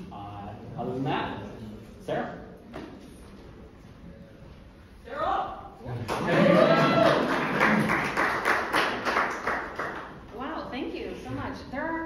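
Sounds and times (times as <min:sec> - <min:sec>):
audience applauding: 0:06.0 - 0:10.3.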